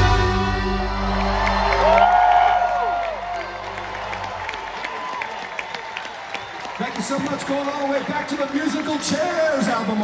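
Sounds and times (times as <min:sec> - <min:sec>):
crowd cheering: 0:00.0 - 0:10.0
long whoop from crowd: 0:00.9 - 0:06.8.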